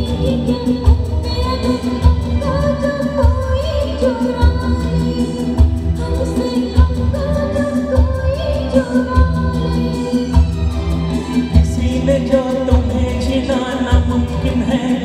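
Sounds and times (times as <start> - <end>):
band accompaniment: 0.0 - 15.0
woman singing into a microphone: 0.0 - 15.0.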